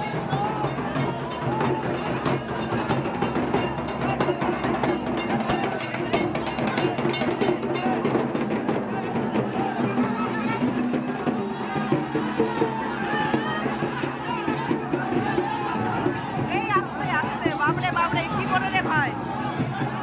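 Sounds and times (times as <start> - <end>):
crowd voices: 0.0 - 20.0
fast percussion music: 0.0 - 20.0.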